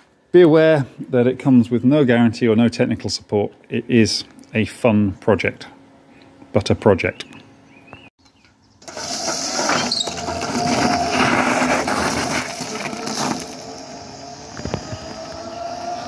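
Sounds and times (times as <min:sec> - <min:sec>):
gravel crunching and scattering: 0:08.8 - 0:15.5
electric motor whine: 0:08.9 - 0:16.0.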